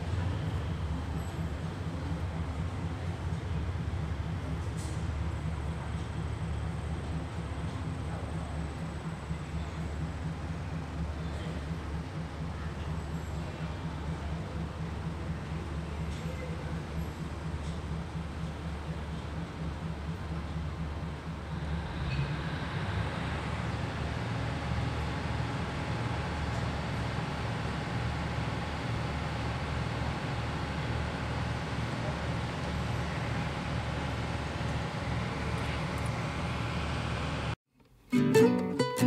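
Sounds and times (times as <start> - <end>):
low rumble of railway platform: 0.0 - 37.6
strummed acoustic guitar music: 38.1 - 39.0.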